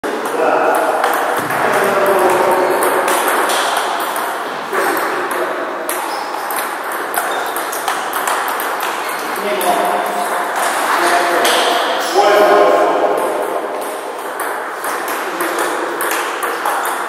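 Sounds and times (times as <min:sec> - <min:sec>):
table tennis ball clicking: 0:05.0 - 0:10.6.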